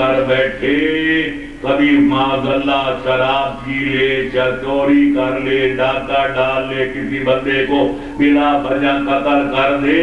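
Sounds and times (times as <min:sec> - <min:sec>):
man reciting in chant-like voice: 0:00.0 - 0:10.0.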